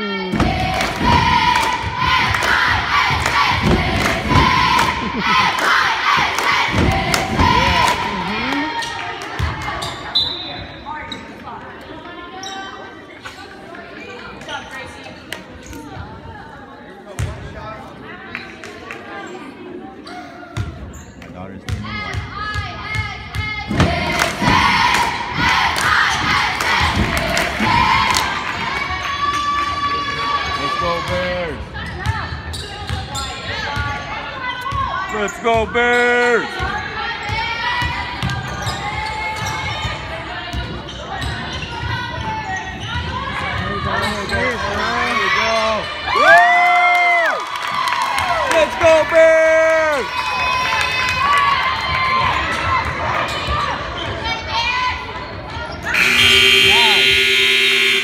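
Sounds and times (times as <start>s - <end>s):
spectators shouting and cheering: 0.0s - 9.8s, 43.1s - 55.2s, 55.8s - 58.0s.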